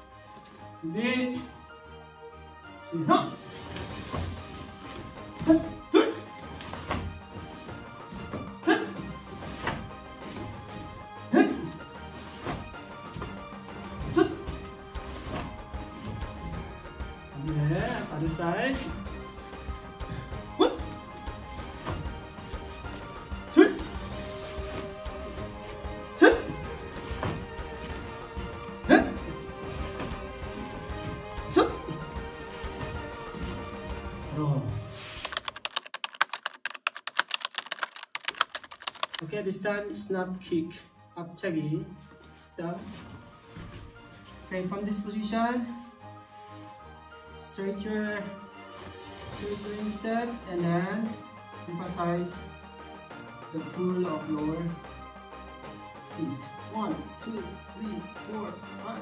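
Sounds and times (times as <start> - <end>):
background music: 0.0 - 59.0
pitched music or voice: 8.6 - 9.1, 11.3 - 11.8, 14.0 - 14.6, 17.3 - 19.0, 23.4 - 27.0, 28.6 - 29.6, 31.4 - 32.1
keyboard typing clicks: 35.2 - 39.2.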